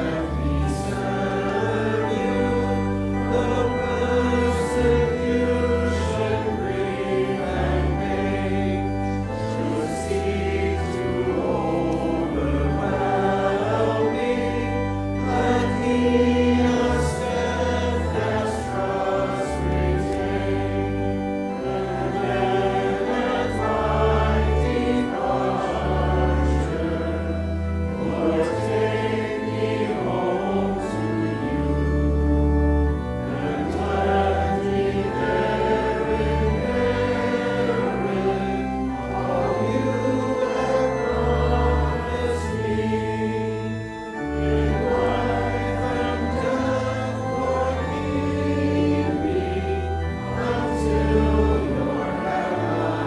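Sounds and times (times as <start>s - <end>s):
congregation singing a hymn: 0.0s - 53.0s
pipe organ bass notes: 0.0s - 53.0s.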